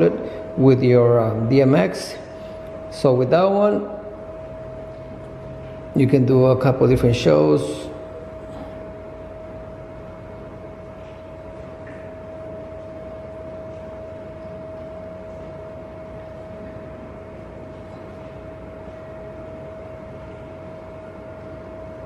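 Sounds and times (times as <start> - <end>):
cooling fan hiss and whine: 0.0 - 22.0.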